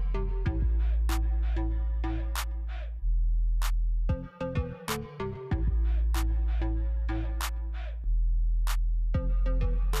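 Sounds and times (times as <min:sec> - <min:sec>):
electronic music with deep bass: 0:00.0 - 0:10.0.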